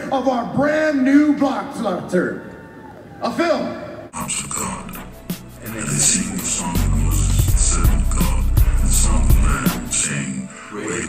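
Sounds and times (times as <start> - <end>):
music: 4.2 - 11.0.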